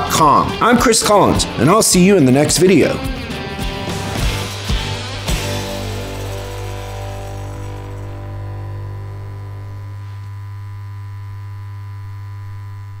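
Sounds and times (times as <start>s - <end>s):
low droning hum: 4.2s - 13.0s.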